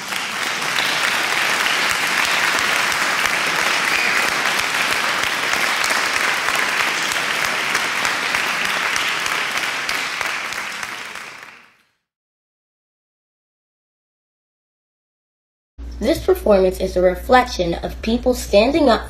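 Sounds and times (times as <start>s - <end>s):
audience applauding: 0.0s - 11.8s.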